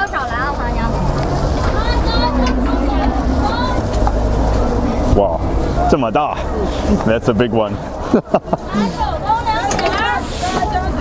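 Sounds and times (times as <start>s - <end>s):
wind rumble on microphone: 0.0s - 8.1s
man laughing: 8.0s - 9.0s.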